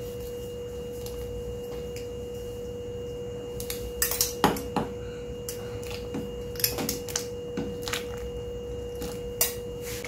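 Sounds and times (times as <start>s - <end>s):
steady pure tone: 0.0s - 10.0s.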